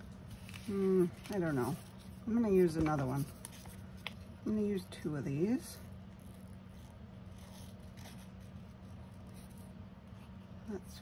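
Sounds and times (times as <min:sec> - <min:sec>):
paper rustling: 0:00.0 - 0:04.3, 0:05.8 - 0:10.5
steady low hum: 0:00.0 - 0:11.0.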